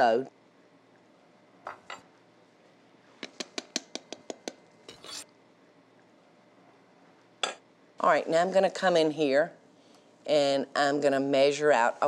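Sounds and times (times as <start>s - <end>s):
utensil scraping bowl: 4.9s - 5.3s.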